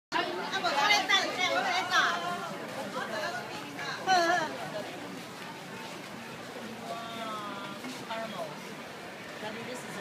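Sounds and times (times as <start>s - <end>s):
people talking: 0.2s - 10.0s.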